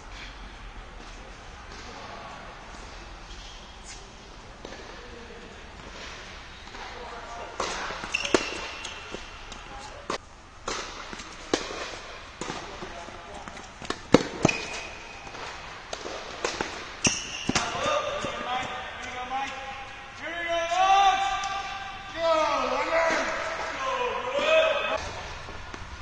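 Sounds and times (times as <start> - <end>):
tennis balls bouncing on court: 6.6 - 22.0
tennis balls struck by rackets: 7.6 - 22.0
voices: 12.4 - 25.4.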